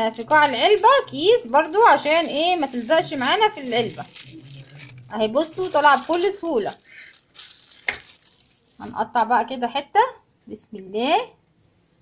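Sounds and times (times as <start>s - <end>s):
plastic bag rustling: 0.0s - 9.0s.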